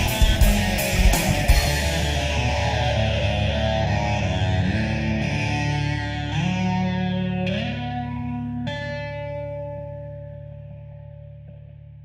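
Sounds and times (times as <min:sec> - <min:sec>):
electric guitars and bass: 0:00.0 - 0:12.0.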